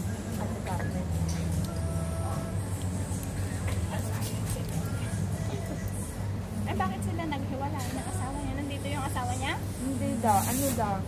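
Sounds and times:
voices in a cafe: 0.0s - 11.0s.

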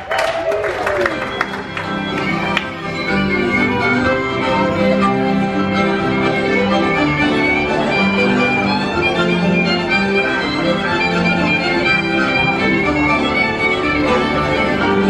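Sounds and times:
country band music with fiddle: 1.2s - 15.0s.

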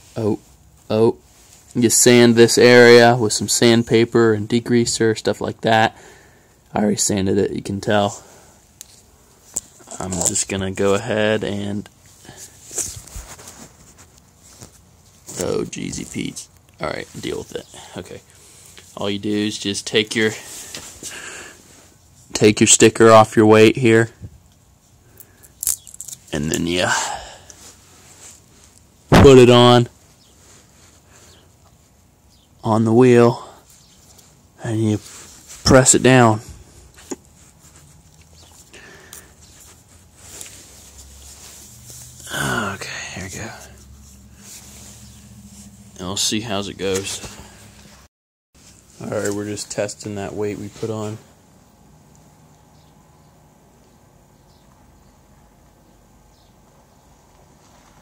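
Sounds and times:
light rustling: 12.3s - 15.6s.

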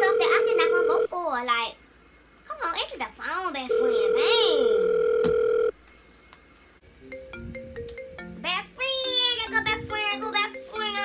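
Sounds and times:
telephone ringback beep: 0.0s - 1.1s, 3.7s - 5.8s
woman speaking: 0.0s - 1.4s, 2.5s - 4.9s, 8.5s - 11.0s.

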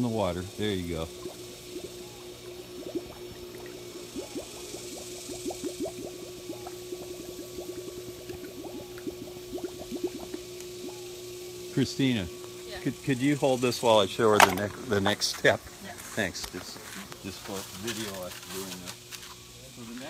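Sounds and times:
hose gurgling under water: 0.0s - 11.0s
steady hum: 0.0s - 20.0s.

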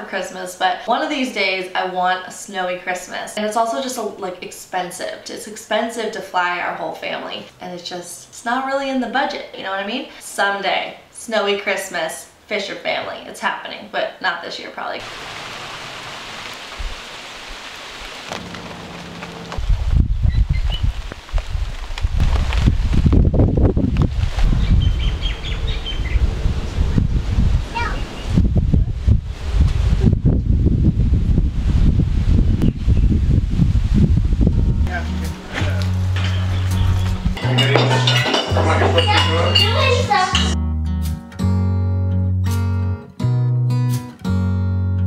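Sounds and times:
rain falling: 15.0s - 24.5s
music with bass notes: 18.3s - 20.5s, 34.1s - 45.0s
rolling thunder: 18.3s - 21.8s, 22.6s - 34.9s.

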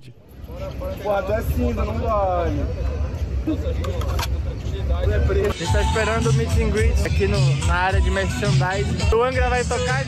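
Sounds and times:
voices talking: 0.0s - 10.0s.

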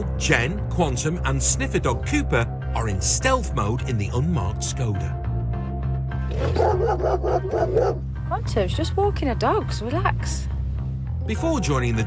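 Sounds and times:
background music: 0.0s - 12.0s
dog barking rapidly: 6.3s - 8.0s.

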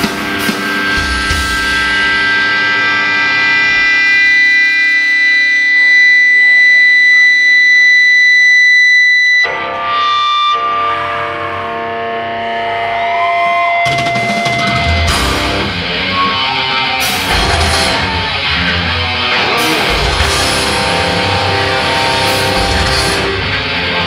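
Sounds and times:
ringing electric guitar chords: 0.0s - 24.0s.

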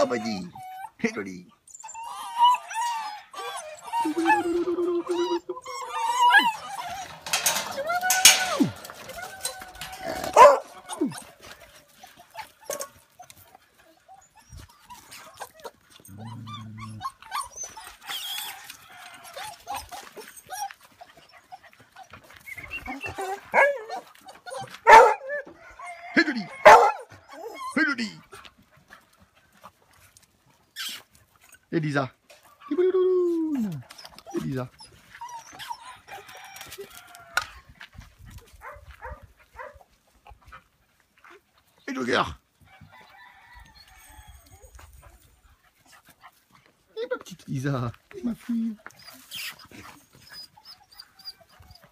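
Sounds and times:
dogs whining: 0.0s - 1.0s, 1.6s - 27.8s, 33.4s - 36.6s, 48.8s - 51.9s
puppies yelping: 0.0s - 28.1s, 33.8s - 37.1s, 48.8s - 51.9s
dogs barking and yipping: 1.6s - 31.7s, 33.8s - 41.8s, 48.8s - 51.9s.

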